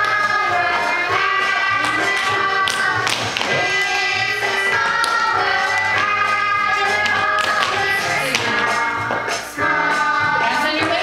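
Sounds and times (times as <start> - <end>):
dance class music: 0.0 - 11.0
dance shoes tapping on wooden floor: 1.7 - 6.1, 6.9 - 9.3.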